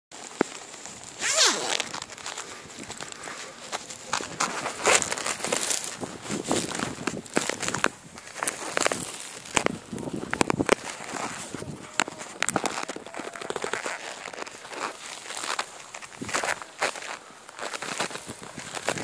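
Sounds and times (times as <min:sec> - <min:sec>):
footsteps through grass: 0:00.2 - 0:19.0.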